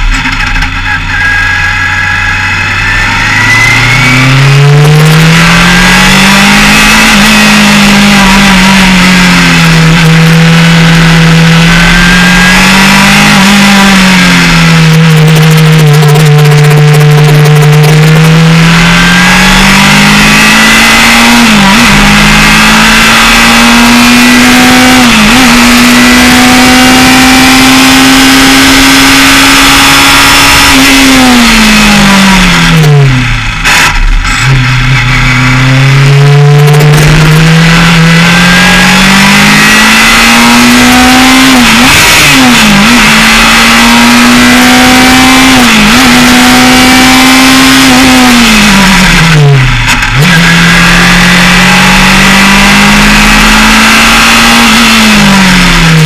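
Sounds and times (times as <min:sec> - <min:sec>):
race car engine revving and shifting: 0:00.0 - 0:56.0.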